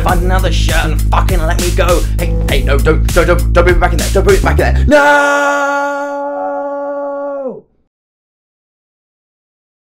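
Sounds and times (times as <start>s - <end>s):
person shouting no: 4.9s - 7.6s.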